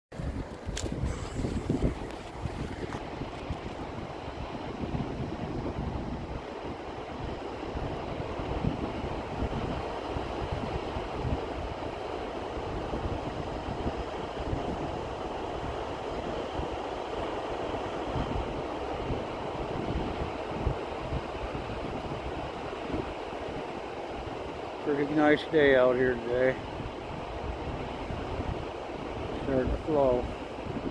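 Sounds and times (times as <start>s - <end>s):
wind buffeting microphone: 0.1s - 30.9s.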